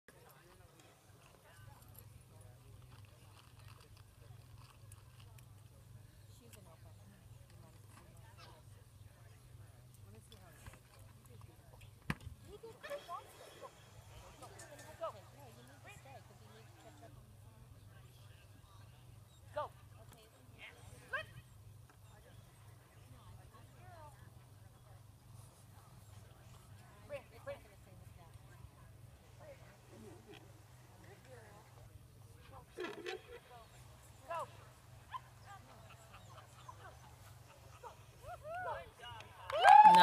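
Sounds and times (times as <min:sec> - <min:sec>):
faint distant voices: 0:00.1 - 0:40.0.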